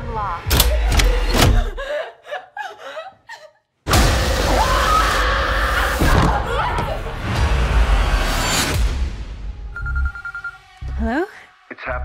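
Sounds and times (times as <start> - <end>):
horror trailer music: 3.9 - 12.0.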